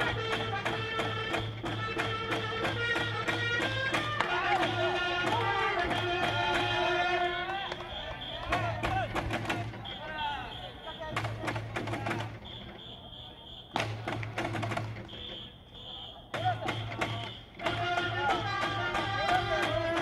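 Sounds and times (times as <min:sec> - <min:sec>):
taiko drum beats: 0:00.0 - 0:07.1, 0:07.7 - 0:12.9, 0:13.7 - 0:15.4, 0:16.3 - 0:20.0
crowd chanting: 0:00.0 - 0:20.0
high electronic whistle tone: 0:07.6 - 0:08.8, 0:09.8 - 0:11.2, 0:12.3 - 0:13.8, 0:15.0 - 0:17.6.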